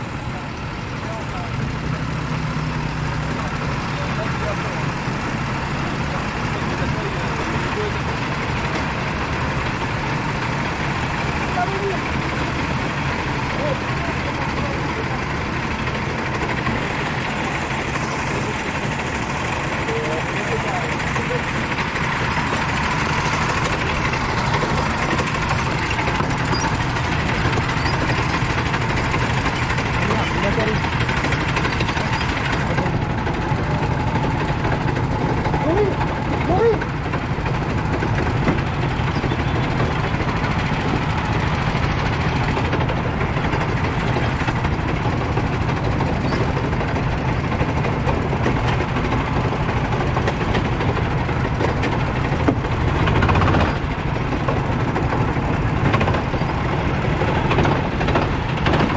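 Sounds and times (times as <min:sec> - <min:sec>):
go-kart engines idling: 0:00.0 - 0:58.9
indistinct voices: 0:13.5 - 0:44.8.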